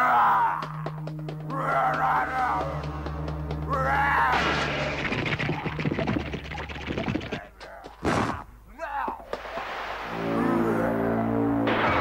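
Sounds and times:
rapid crunching and ripping hits: 4.3 - 8.4
loud crash: 11.6 - 12.0.

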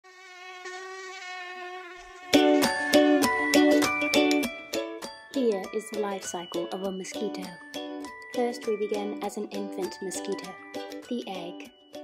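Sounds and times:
mosquito buzzing: 0.0 - 3.3.

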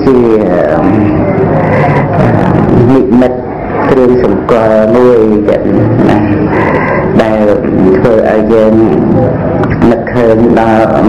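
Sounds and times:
man chanting: 2.0 - 11.0.

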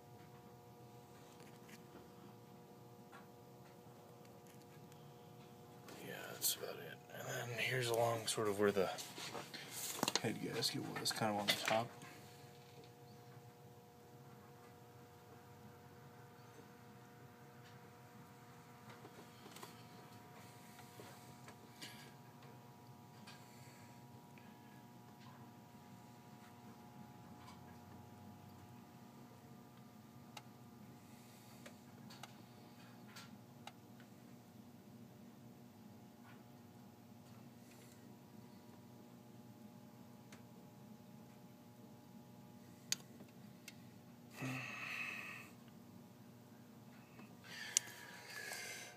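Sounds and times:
steady low hum: 0.0 - 48.9
person exhaling: 44.3 - 45.6, 47.4 - 48.9.

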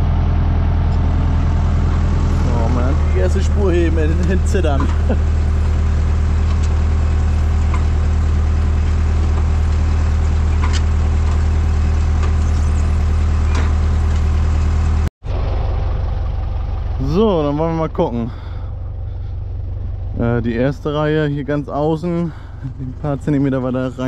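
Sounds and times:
tractor engine droning: 0.0 - 24.0.

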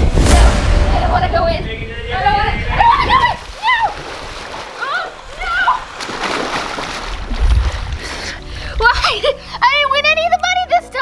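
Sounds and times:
woman shrieking: 2.8 - 4.0
splash into pool: 3.1 - 7.9.

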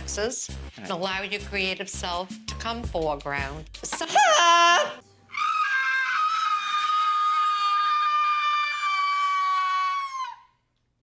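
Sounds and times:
person screaming high-pitched: 4.1 - 10.4.

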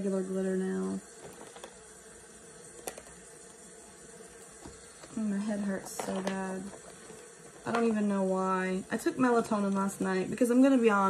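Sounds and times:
small objects clicking and tapping: 2.8 - 3.2, 5.8 - 7.9.

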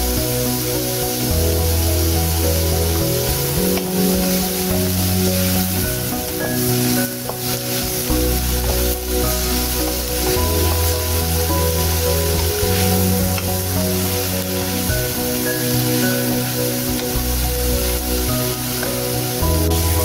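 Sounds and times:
background music with sustained notes: 0.0 - 20.0
onions sizzling in hot oil: 0.0 - 20.0
wooden spatula stirring in wok: 1.2 - 20.0.

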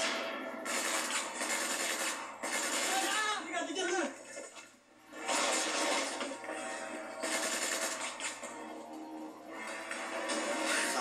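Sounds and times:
drama soundtrack music from tv: 0.0 - 11.0.

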